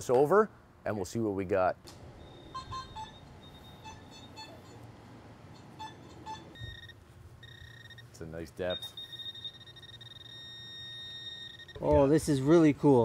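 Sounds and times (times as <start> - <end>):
metal detector beeps: 2.2 - 4.9, 5.5 - 12.1
steady high electronic tone: 2.2 - 4.9, 5.5 - 12.0.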